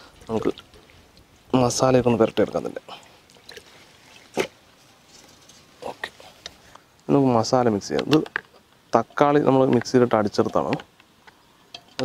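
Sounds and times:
faint wet handling: 0:00.0 - 0:07.1.

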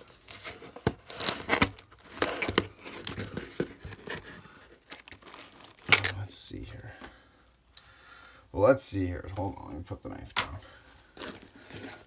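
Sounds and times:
cardboard rustling: 0:00.0 - 0:06.2, 0:11.1 - 0:12.0
knife slitting packing tape: 0:00.4 - 0:02.6.

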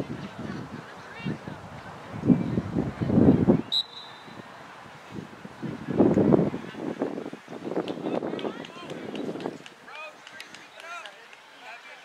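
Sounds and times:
brief high whistle: 0:03.7 - 0:04.4.

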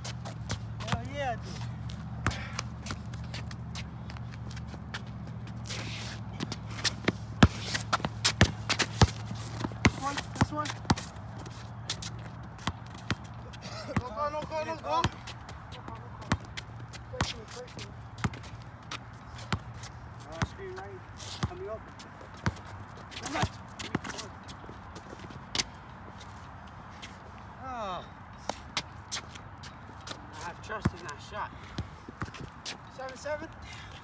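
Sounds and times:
basketball bouncing on concrete: 0:00.0 - 0:05.6, 0:06.3 - 0:24.3, 0:30.4 - 0:32.8
shoe scuffs and footsteps: 0:00.0 - 0:12.4.

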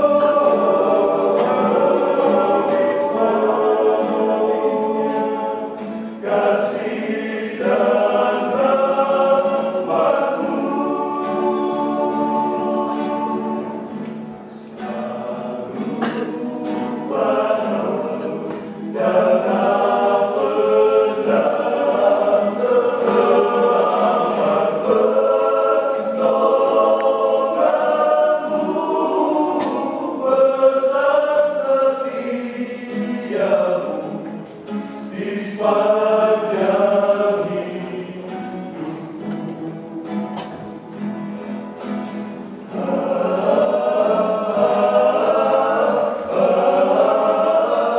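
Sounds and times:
male vocal group singing a hymn: 0:00.0 - 0:47.9.

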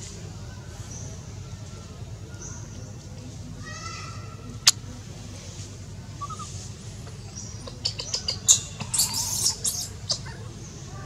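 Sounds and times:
baby monkey squealing: 0:06.2 - 0:10.5.

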